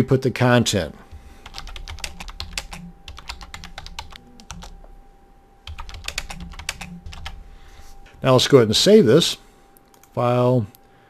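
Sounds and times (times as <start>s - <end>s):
typing on computer keyboard: 1.4s - 4.8s, 5.7s - 7.4s.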